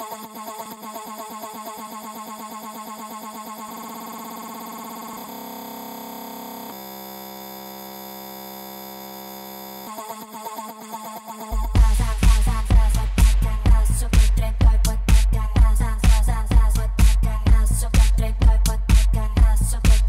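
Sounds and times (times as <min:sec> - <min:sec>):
steady buzzing tone: 0:00.0 - 0:10.2, 0:11.5 - 0:19.9
choppy repeating electronic fragment: 0:00.0 - 0:20.0.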